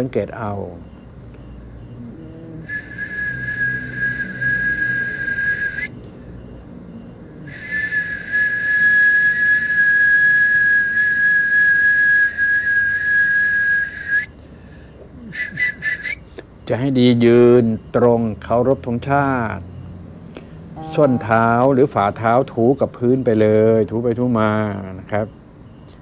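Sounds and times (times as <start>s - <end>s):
high whistling tone: 2.1s - 6.0s, 7.4s - 14.4s, 15.2s - 16.3s, 20.4s - 21.7s.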